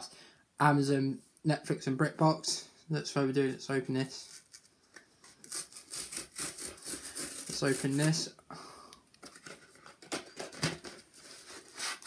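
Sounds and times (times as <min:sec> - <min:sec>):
packaging rustling and tearing: 0:09.2 - 0:12.0.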